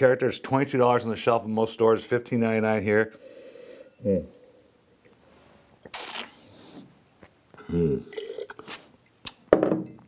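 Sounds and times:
person humming: 0:07.6 - 0:08.1.

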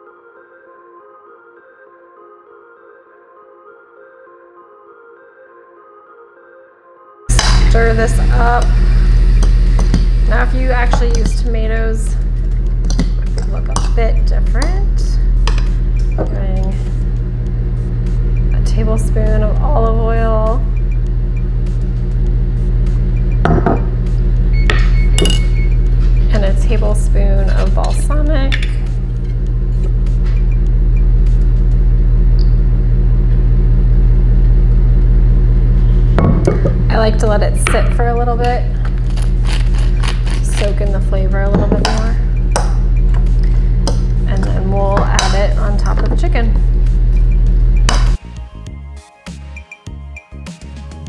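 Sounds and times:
background music: 0:00.0 - 0:31.5, 0:40.0 - 0:51.0
spoon stirring wet mixture: 0:09.4 - 0:16.2, 0:41.5 - 0:46.4
plastic spoon knocking: 0:12.8 - 0:14.0, 0:23.4 - 0:23.9.

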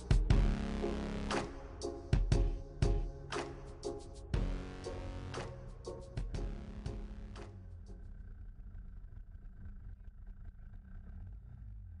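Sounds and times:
muffled kart engine rumble: 0:00.0 - 0:12.0.

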